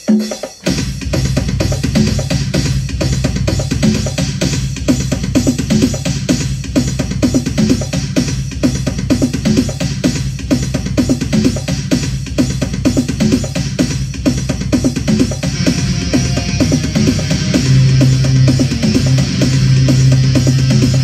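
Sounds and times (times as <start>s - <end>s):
drum machine beat: 0.0s - 21.0s
synth bass line: 15.4s - 21.0s.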